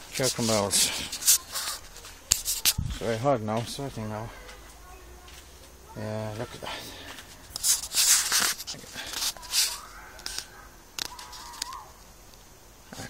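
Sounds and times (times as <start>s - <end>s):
rustling of plants and handling noise: 0.0s - 13.0s.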